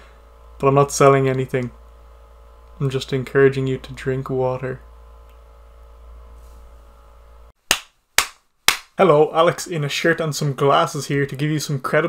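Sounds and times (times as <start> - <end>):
faint steady hum: 0.0 - 12.0
sharp percussive hits: 7.7 - 9.0.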